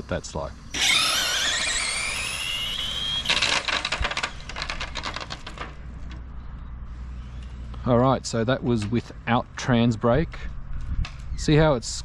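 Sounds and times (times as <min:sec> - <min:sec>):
electric motor whine rising: 0:00.7 - 0:05.1.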